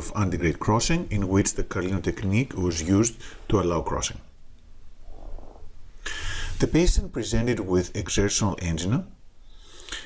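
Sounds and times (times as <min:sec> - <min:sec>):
faint low background hum: 0:00.0 - 0:10.0.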